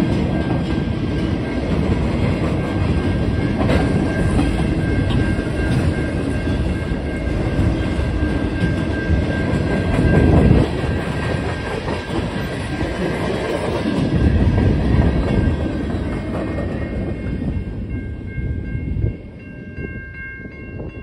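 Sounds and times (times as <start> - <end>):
freight train rumbling: 0.0 - 21.0.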